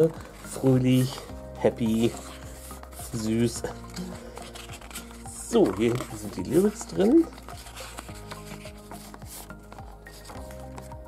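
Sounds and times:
paper pages turning: 0.0 - 11.0
soft background music: 0.0 - 11.0.

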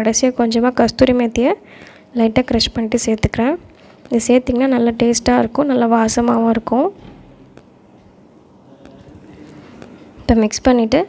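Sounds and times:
soft pops: 1.8 - 10.7.

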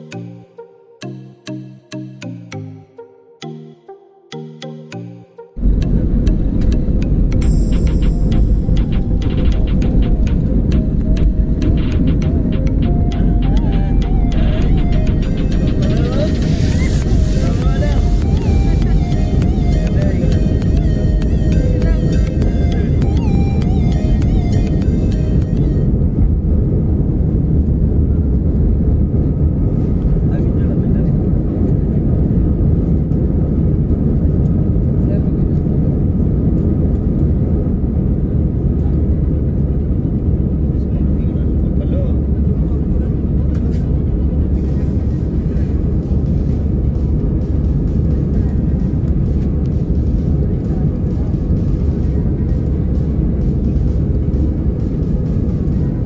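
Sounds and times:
jet engine roar in cabin: 5.6 - 56.0.

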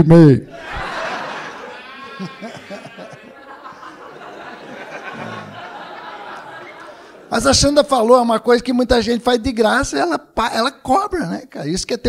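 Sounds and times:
high-pitched laugh: 0.5 - 7.1
audience laughing: 0.5 - 7.5.

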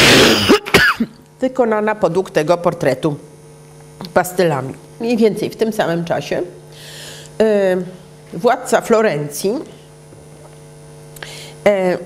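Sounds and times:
woman coughing: 0.0 - 1.2
electrical mains hum: 0.0 - 12.0
woman breathing in sharply: 6.7 - 7.4, 11.2 - 11.6.

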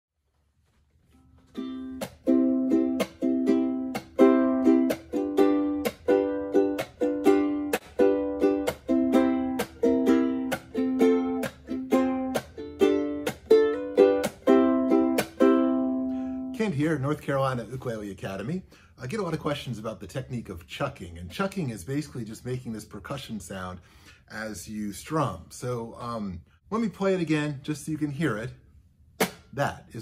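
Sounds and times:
ukulele strumming with chuck: 1.1 - 18.0, 29.2 - 29.6.

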